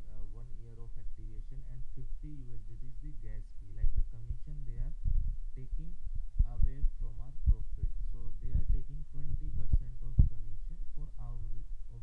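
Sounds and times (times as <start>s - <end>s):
person speaking: 0.0s - 12.0s.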